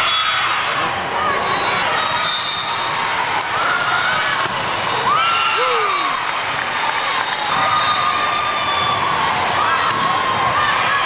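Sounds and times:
many overlapping voices: 0:00.0 - 0:05.1, 0:06.3 - 0:11.0.

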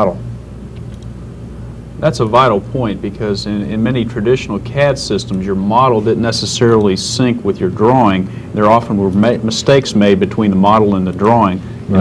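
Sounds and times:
low electrical hum: 0:00.0 - 0:12.0
man speaking: 0:02.0 - 0:12.0.

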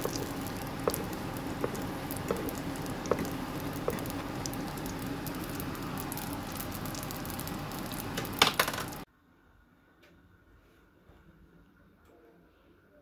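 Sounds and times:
dough sizzling in hot oil: 0:00.0 - 0:09.1.

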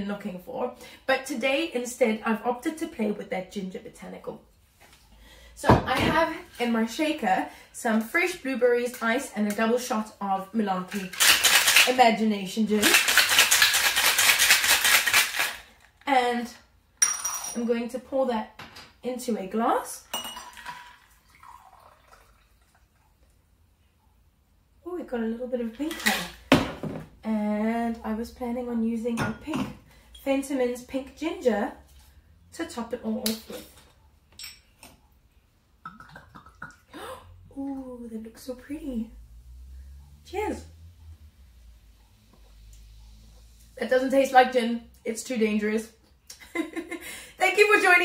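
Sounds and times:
ice rattling in cocktail shaker: 0:10.8 - 0:16.0, 0:20.2 - 0:22.5
glass bottle clinking: 0:20.1 - 0:21.7.

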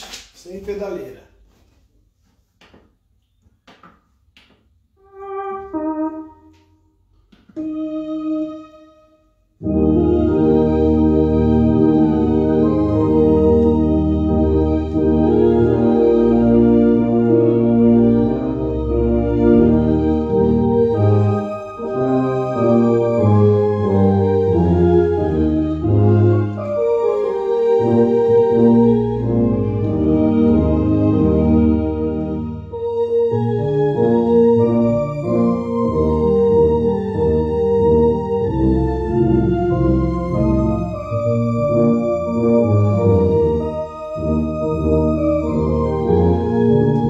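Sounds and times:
electronic organ chords: 0:05.0 - 0:06.8, 0:07.5 - 0:47.0
loud organ chord with deep bass: 0:09.6 - 0:47.0.

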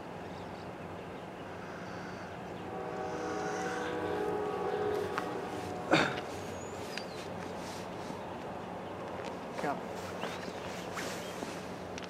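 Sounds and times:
low train rumble: 0:00.0 - 0:12.0
distant locomotive air horn: 0:01.7 - 0:07.1.

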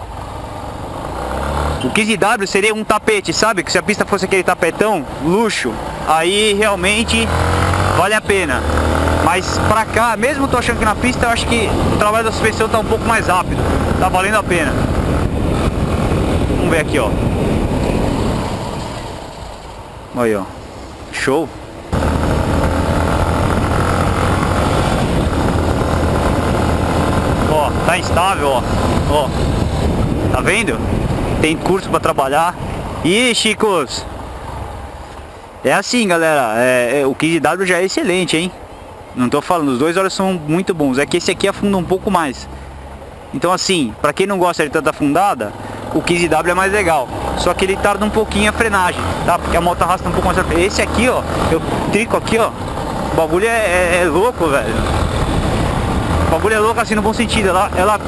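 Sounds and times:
motorcycle engine running: 0:05.1 - 0:19.9, 0:21.9 - 0:31.4, 0:45.6 - 0:58.0
wind rush on microphone: 0:09.3 - 0:19.8, 0:21.9 - 0:33.3, 0:49.0 - 0:58.0.

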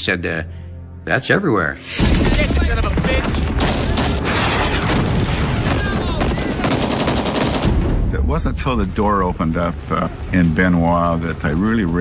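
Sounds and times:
automatic gunfire: 0:03.5 - 0:07.8.

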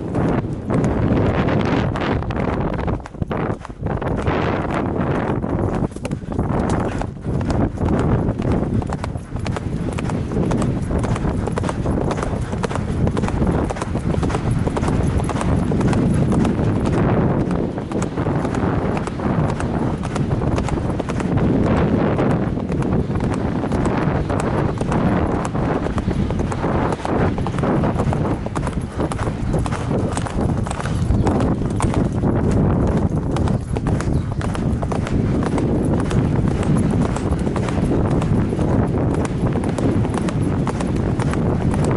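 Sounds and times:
horse hooves galloping on turf: 0:00.0 - 0:41.9.

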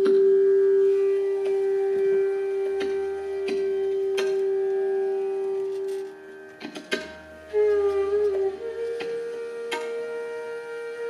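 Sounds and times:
bamboo flute long note: 0:00.0 - 0:11.0
light tabla strokes: 0:00.0 - 0:11.0.

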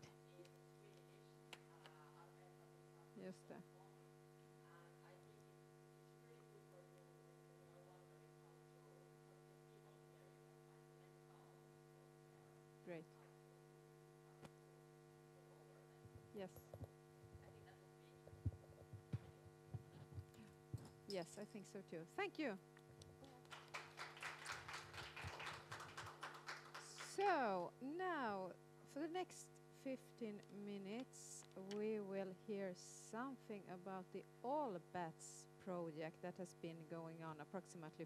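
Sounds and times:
electrical mains hum: 0:00.0 - 0:38.0.

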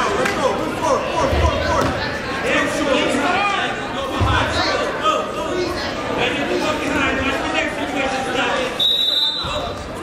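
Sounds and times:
high whistle-like tone: 0:08.8 - 0:09.6.

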